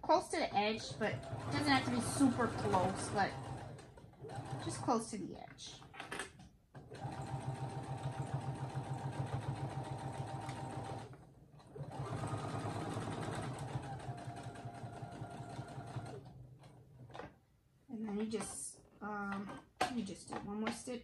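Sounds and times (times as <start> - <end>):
sewing machine stitching: 0.6 - 4.9, 5.7 - 17.4.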